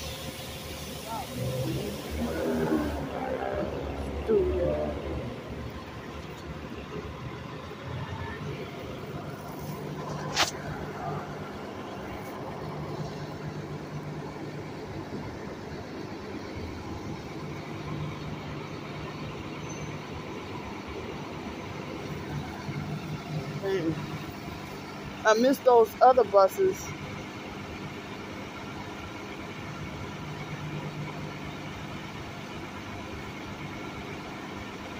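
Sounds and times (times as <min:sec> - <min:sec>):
city street traffic: 0:00.0 - 0:34.9
vehicle engine idling: 0:00.0 - 0:34.9.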